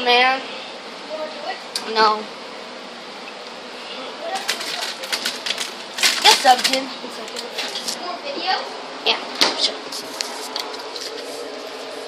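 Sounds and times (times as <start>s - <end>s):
device handling clicks and rustles: 4.4s - 8.0s.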